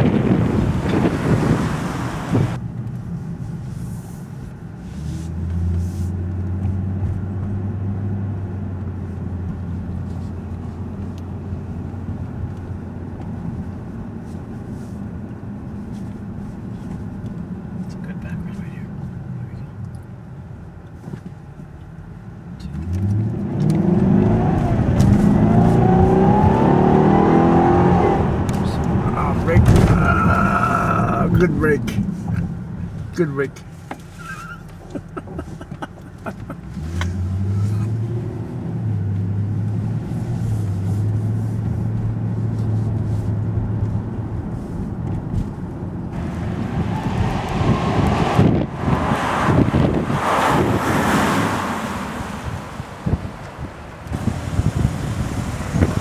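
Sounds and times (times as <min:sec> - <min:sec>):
wind on microphone: 0:00.0 - 0:02.6, 0:46.2 - 0:51.0, 0:52.3 - 0:56.0
car engine accelerating: 0:00.0 - 0:20.1, 0:21.5 - 0:56.0.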